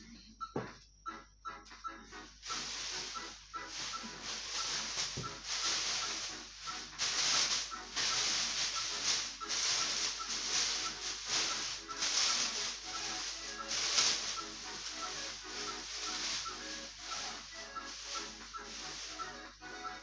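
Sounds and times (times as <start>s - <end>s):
background music with ticking beat: 0.0s - 20.0s
plastic wrapping rustling: 2.4s - 20.0s.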